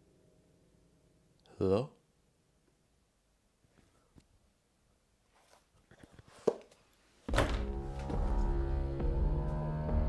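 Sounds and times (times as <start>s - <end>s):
dark ominous film score: 7.3s - 10.0s.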